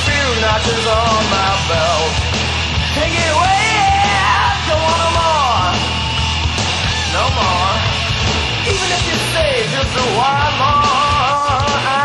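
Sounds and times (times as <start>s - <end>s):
loud rock music: 0.0s - 12.0s.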